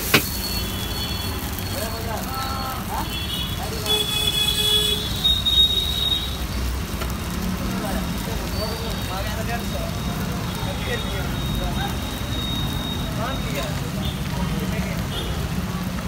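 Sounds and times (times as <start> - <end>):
gas burner roar: 0.0 - 16.0
traffic: 0.0 - 16.0.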